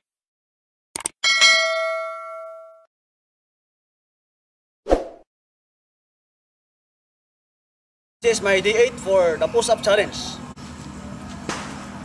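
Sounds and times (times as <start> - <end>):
notification bell ding: 1.2 - 2.9.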